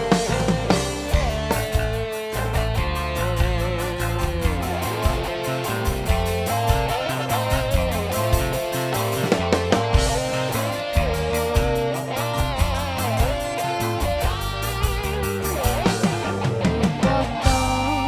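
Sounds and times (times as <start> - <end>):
bass: 0.0 - 18.0
drum beat: 0.0 - 18.0
electric guitars: 0.0 - 18.0
wavering lead guitar melody: 0.0 - 18.0.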